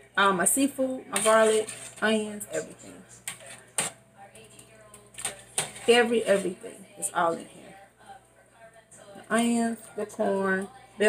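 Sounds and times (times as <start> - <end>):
metal utensil stirring in pot: 1.1 - 4.0, 5.2 - 6.7.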